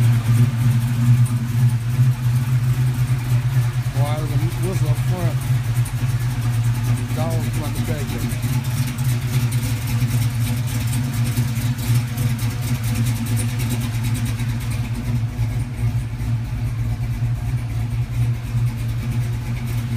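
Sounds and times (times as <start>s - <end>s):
car engine idling: 0.0s - 19.9s.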